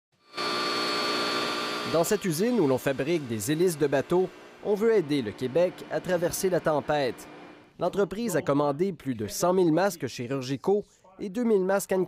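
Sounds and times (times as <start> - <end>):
angle grinder sanding metal: 0.4 - 7.7.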